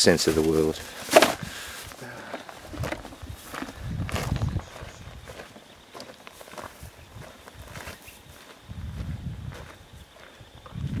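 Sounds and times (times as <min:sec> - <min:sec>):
footsteps in dry grass: 0:00.0 - 0:11.0.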